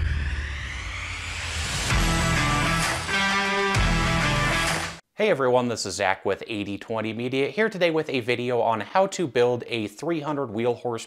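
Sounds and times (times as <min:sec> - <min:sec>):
intro music: 0:00.0 - 0:05.0.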